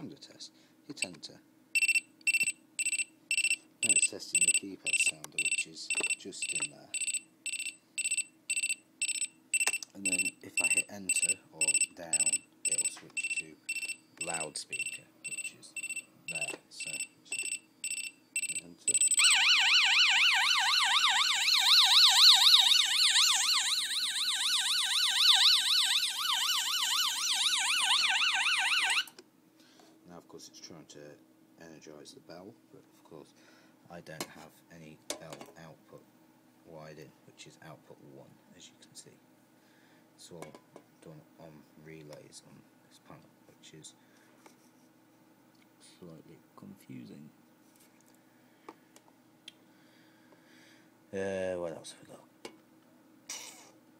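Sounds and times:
alarm sounder beeping: 1.8s - 29.1s.

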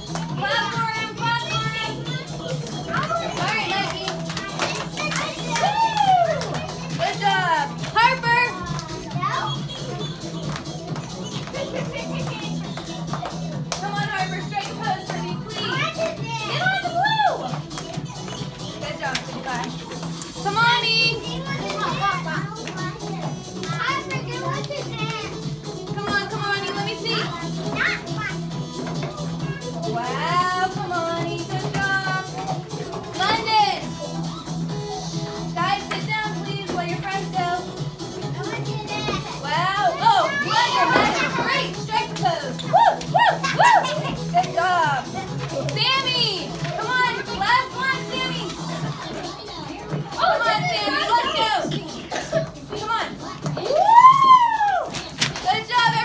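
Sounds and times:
children chattering: 0.0s - 56.0s
music playing: 0.0s - 56.0s.

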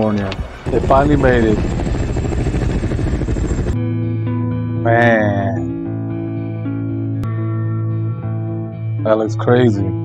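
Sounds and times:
deep dense wash of noise: 0.4s - 3.8s.

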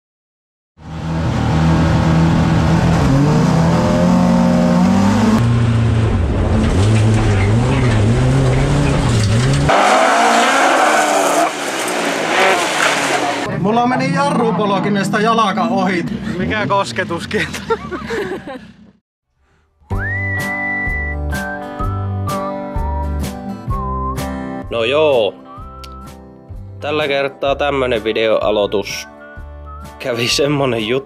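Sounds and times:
race car engine revving: 0.8s - 17.3s.

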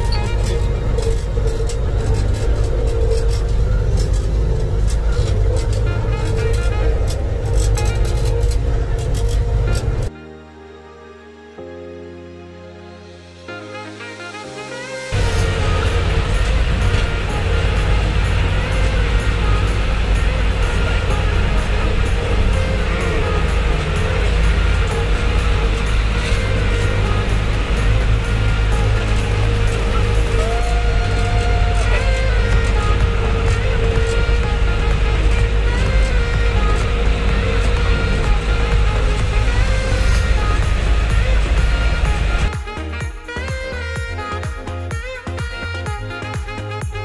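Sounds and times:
snowcat engine rumble: 0.0s - 10.1s, 15.1s - 47.0s
steady whine: 0.0s - 10.1s, 15.1s - 43.3s.

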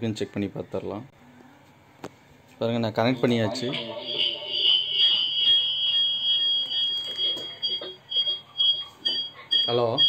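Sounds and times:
high-pitched feedback whistle: 3.4s - 10.0s.

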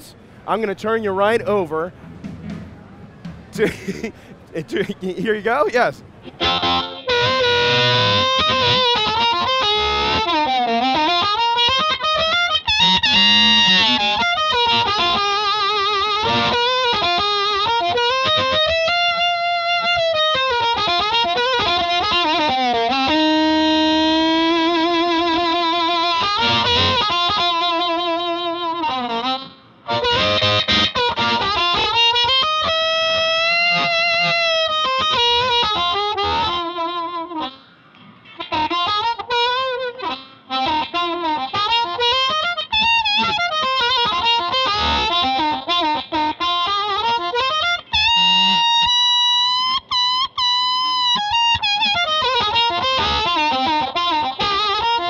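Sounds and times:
amplified harmonica melody: 0.0s - 55.0s.

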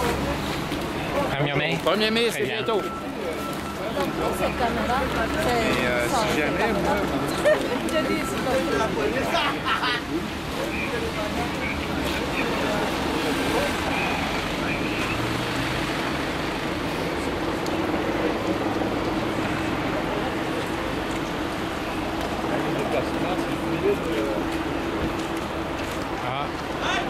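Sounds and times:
steady engine hum: 0.0s - 27.0s
traffic on wet pavement: 0.0s - 27.0s.

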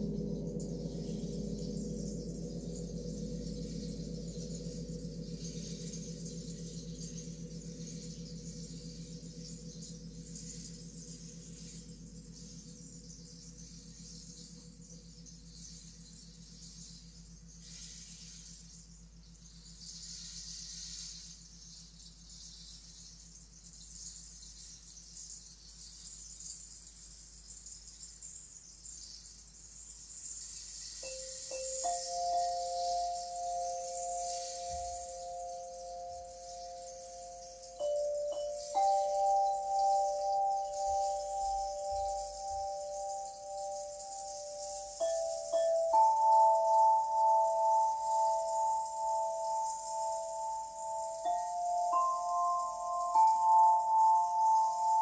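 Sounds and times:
singing bowls ringing: 0.0s - 23.3s, 30.9s - 55.0s
soft high hiss: 0.0s - 55.0s.

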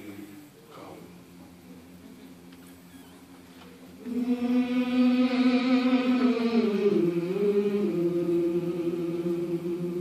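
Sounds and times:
gospel choir singing: 4.0s - 10.0s.

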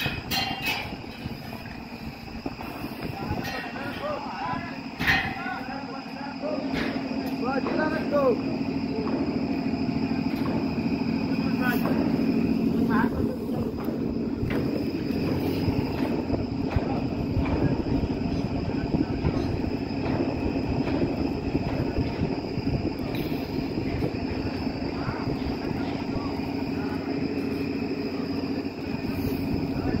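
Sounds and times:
metal clanks: 0.0s - 1.8s, 2.6s - 4.2s, 4.9s - 5.8s
heavy machinery whine and rumble: 0.0s - 30.0s
faint voices: 1.0s - 30.0s.

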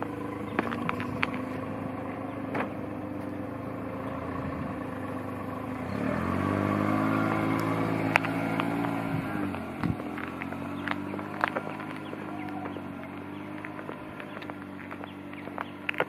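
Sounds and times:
vehicle engine accelerating: 0.0s - 16.0s.

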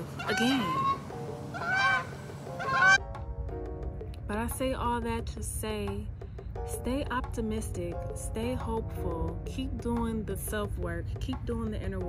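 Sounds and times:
geese honking: 0.0s - 3.0s
faint background music: 0.0s - 12.0s.

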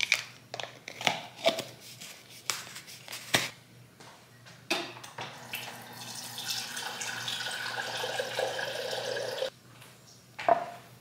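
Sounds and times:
water pouring into glass jar: 5.4s - 9.5s.

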